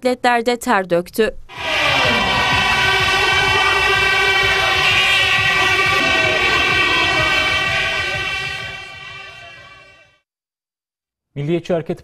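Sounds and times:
crowd noise: 0:01.5 - 0:10.0
horn long blast: 0:01.5 - 0:10.2.

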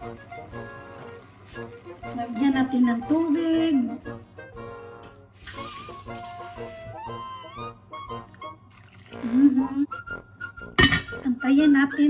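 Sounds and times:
background music melody: 0:00.0 - 0:12.0
sink tap running water: 0:05.3 - 0:06.9.

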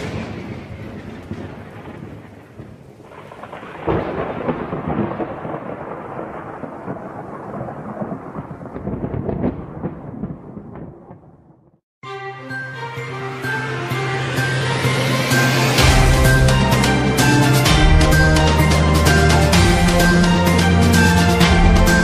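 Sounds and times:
rain: 0:00.0 - 0:10.5
rolling thunder: 0:00.0 - 0:11.7.

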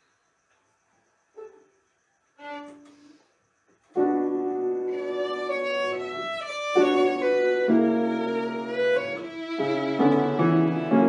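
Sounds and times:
bowed violin notes: 0:04.9 - 0:11.0.

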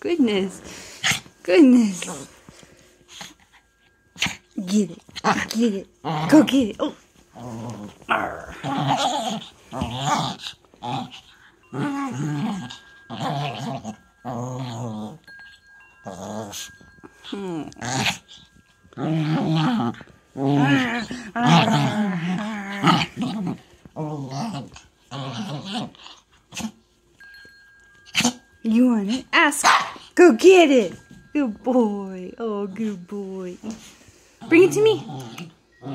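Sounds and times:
small dog growling in play: 0:04.2 - 0:15.3, 0:16.0 - 0:26.8, 0:33.6 - 0:35.9.

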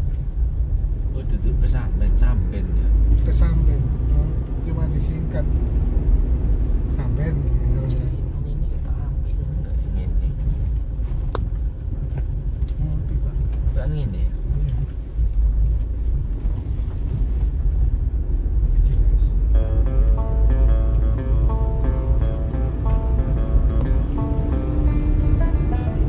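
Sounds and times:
vehicle engine and tyres rumbling: 0:00.0 - 0:26.0.

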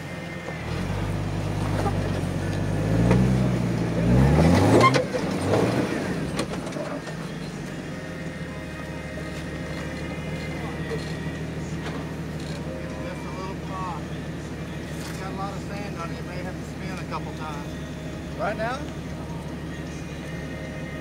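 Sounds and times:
engine revving and idling: 0:00.0 - 0:21.0.

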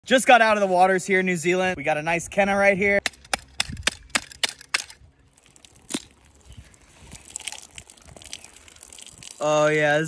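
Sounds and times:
shell crackling as pried apart: 0:03.0 - 0:05.0, 0:05.6 - 0:06.2.

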